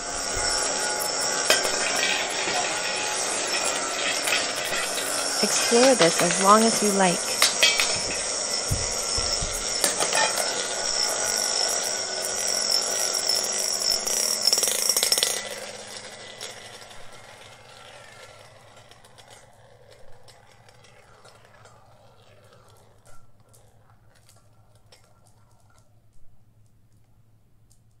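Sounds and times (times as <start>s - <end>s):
marbles clinking: 0.0s - 23.8s
marbles rattling in metal bowls: 0.0s - 25.9s.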